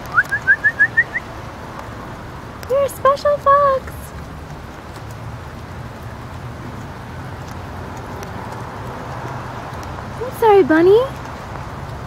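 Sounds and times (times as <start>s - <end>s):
whistled chirps sliding upward: 0.1s - 1.2s.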